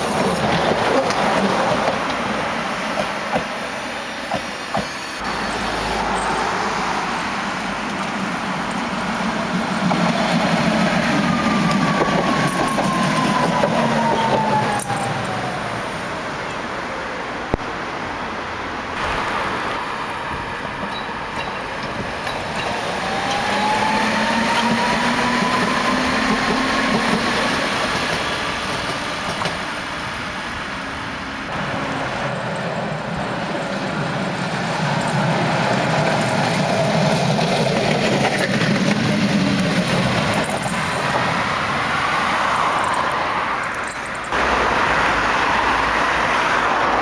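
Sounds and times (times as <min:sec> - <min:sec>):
tram wheels rumbling on rails: 0:00.0 - 0:17.6, 0:19.0 - 0:47.0
tram passing: 0:00.0 - 0:47.0.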